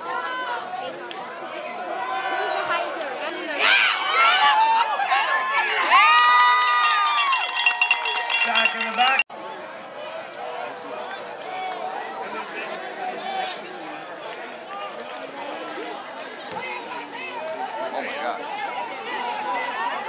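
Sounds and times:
crowd chatter: 0.0 - 20.0
crowd cheering and yelling: 0.0 - 20.0
fast metallic rattle: 6.8 - 9.2.

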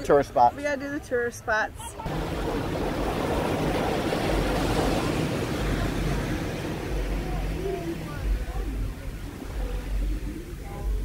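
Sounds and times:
waves washing onto beach: 1.9 - 11.0.

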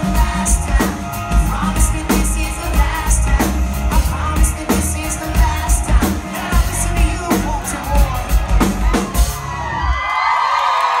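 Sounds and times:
live rock band playing: 0.0 - 10.0
audience screaming and cheering: 0.0 - 11.0.

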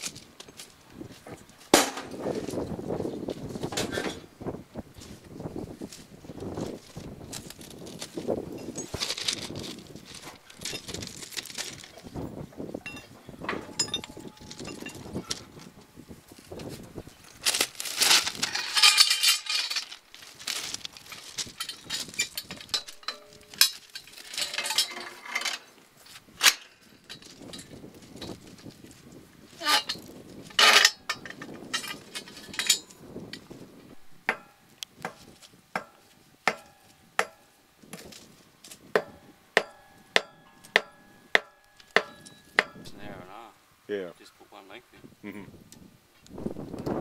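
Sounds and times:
steel striking with ringing clink: 12.8 - 15.1, 22.7 - 23.8, 34.3 - 34.6, 35.8 - 37.6, 39.0 - 42.9
tools scraping on ballast: 12.9 - 15.7, 16.6 - 28.8, 29.6 - 43.1.

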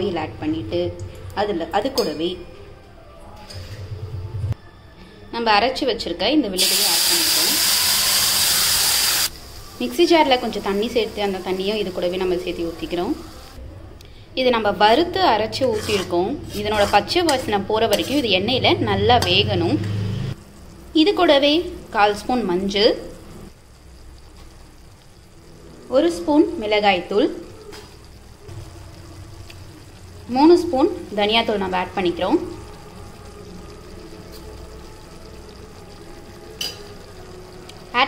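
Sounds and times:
gravy bubbling sizzle: 6.6 - 13.7, 14.6 - 38.0
spoon scraping metal pan: 14.8 - 18.4.

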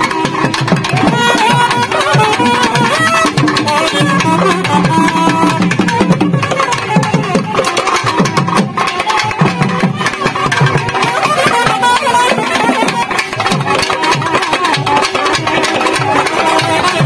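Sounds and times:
thavil drums beating rapidly: 0.0 - 17.0
wavering nadaswaram melody: 0.0 - 17.0.

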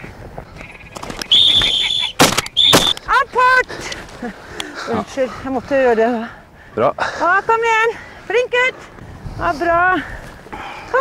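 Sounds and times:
high-pitched dog whistle blasts: 1.3 - 3.0.

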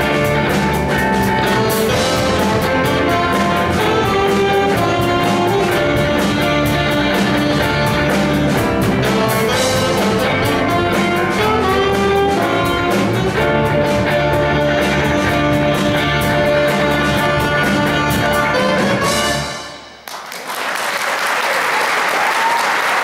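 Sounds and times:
electric guitars: 0.0 - 19.5
electric bass: 0.0 - 19.6
keyboard: 0.0 - 19.8
drum kit with cymbals: 0.0 - 20.0
saxophones: 0.0 - 20.0.

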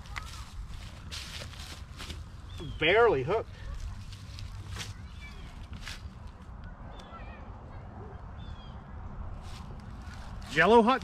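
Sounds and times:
leaves and stones crunching: 0.0 - 6.4, 9.4 - 11.0
low wind rumble: 0.0 - 11.0.

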